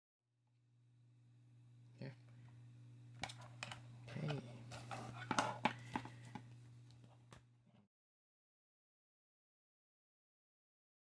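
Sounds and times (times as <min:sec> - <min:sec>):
steady low hum: 0:00.6 - 0:07.9.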